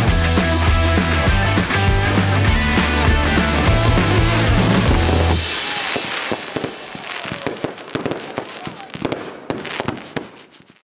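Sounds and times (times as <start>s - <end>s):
music with heavy bass: 0.0s - 5.5s
fireworks cracking and popping: 2.4s - 10.8s.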